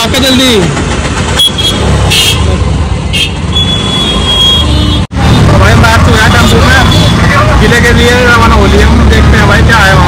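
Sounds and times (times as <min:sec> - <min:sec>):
vehicle engines rumbling: 0:00.0 - 0:10.0.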